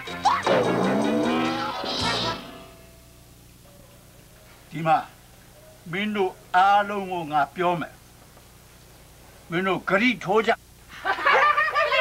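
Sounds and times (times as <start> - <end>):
woman laughing and talking: 11.0 - 12.0.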